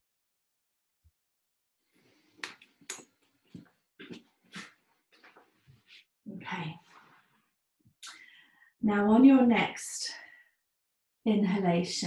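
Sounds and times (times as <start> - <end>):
clothes rustling: 2.0 - 6.0.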